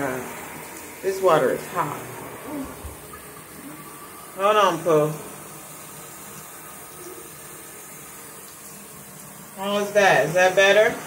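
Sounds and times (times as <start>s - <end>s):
shower water spraying: 0.0s - 11.0s.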